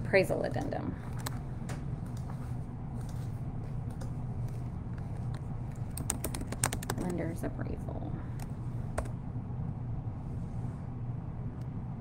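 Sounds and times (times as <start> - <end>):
low steady hum: 0.0 - 12.0
typing on a computer keyboard: 5.7 - 7.3.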